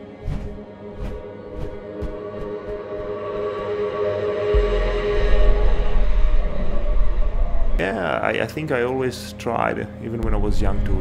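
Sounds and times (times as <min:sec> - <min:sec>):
ambient drone chords: 0:00.0 - 0:11.0.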